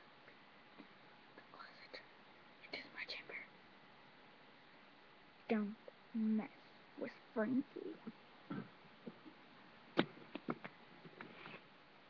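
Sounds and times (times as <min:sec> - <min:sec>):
person whispering: 0:01.4 - 0:03.5.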